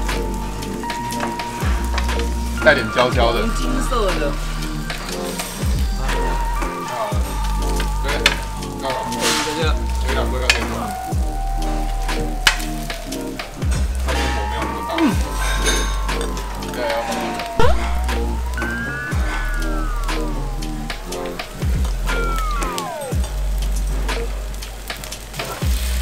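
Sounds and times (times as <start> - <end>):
meat sizzling on a grill: 0.0 - 26.0
music with deep pulsing bass: 0.0 - 26.0.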